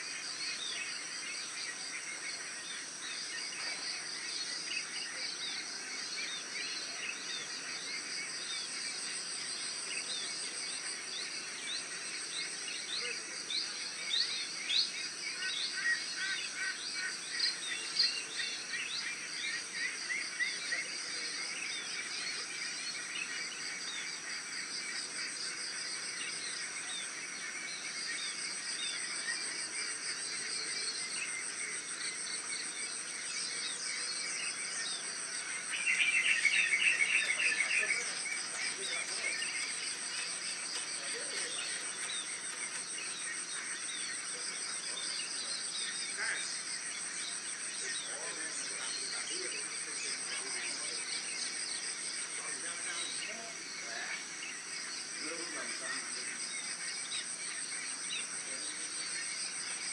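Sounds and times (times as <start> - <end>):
pulsing insect trill: 0.0 - 59.9
rapidly pulsing bird call: 0.0 - 59.9
small birds chirping: 0.0 - 59.9.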